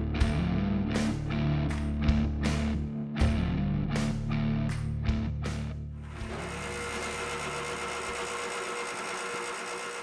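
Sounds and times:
bench grinder whine: 6.0s - 10.0s.

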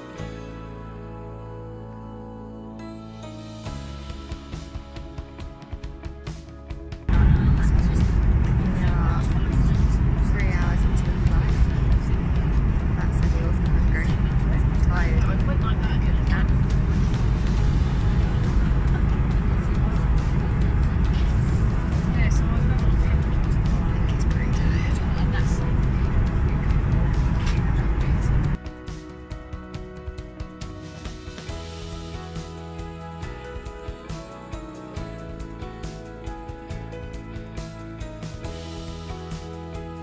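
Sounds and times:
music: 0.0s - 40.0s
airliner cabin roar: 7.1s - 28.6s.

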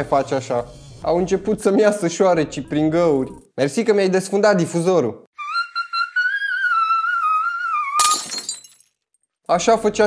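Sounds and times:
glass shattering: 8.0s - 9.1s.

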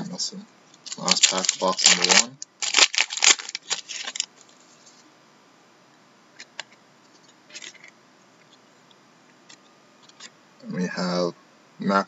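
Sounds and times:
faint clicks and rustles of cards: 0.7s - 5.1s, 6.4s - 10.4s
wrapper crinkling and tearing: 0.8s - 4.4s.

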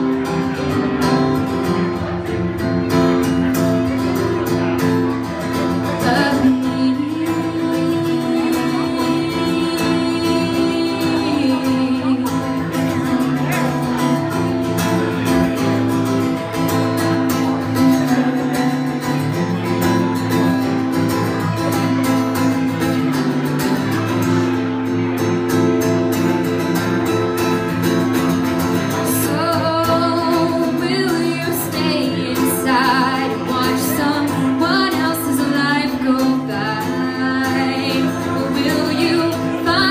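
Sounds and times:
acoustic guitar: 0.0s - 39.9s
woman singing: 5.8s - 13.0s, 29.0s - 39.9s.

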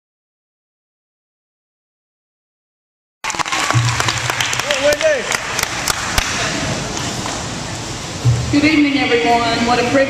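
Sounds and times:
audience applause: 3.2s - 6.4s
low steady hum: 3.5s - 10.0s.

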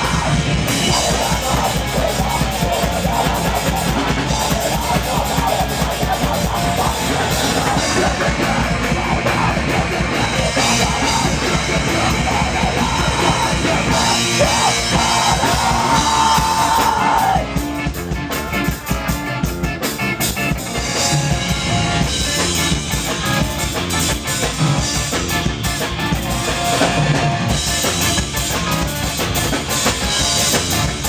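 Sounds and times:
person singing: 0.0s - 17.8s
drums: 0.0s - 31.0s
live ska band playing: 0.0s - 31.0s.

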